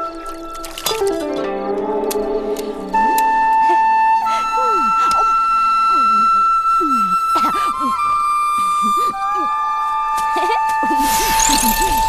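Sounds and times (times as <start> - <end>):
flute holding long notes: 0.0 - 12.0.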